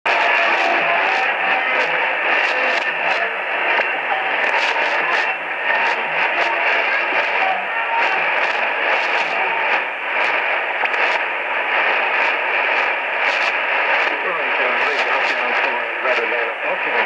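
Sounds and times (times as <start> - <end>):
faint voice on radio: 0.1 - 17.0
radio hiss with static crackles: 0.1 - 17.0.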